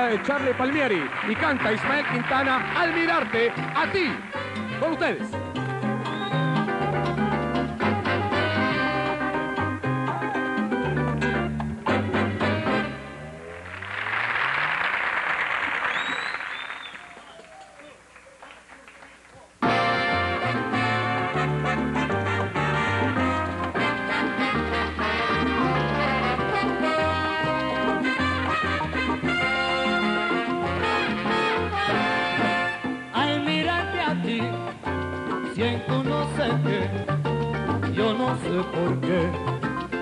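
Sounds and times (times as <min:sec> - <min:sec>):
audience applauding: 0:00.0 - 0:04.8, 0:13.4 - 0:19.5
brass melody: 0:00.0 - 0:14.7, 0:19.6 - 0:40.0
salsa band chord: 0:00.0 - 0:14.7, 0:19.6 - 0:40.0
bass line: 0:00.0 - 0:16.3, 0:19.6 - 0:40.0
latin percussion: 0:00.0 - 0:17.2, 0:19.6 - 0:40.0.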